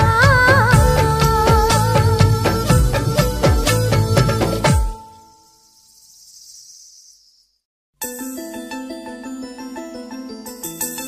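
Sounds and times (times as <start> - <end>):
recorded song: 0.0 - 5.4
faint high hiss: 5.0 - 7.6.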